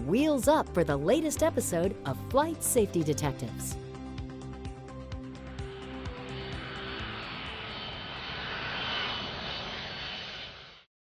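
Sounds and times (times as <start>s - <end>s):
jet airliner engine whine: 3.3s - 10.9s.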